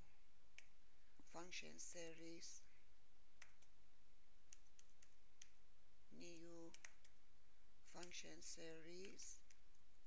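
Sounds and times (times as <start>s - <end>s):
keyboard keystrokes: 6.7s - 7.1s.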